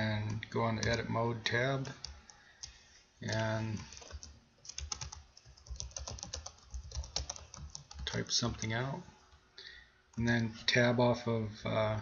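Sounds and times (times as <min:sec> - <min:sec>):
computer keyboard typing: 0:00.2 - 0:01.1, 0:01.8 - 0:08.7.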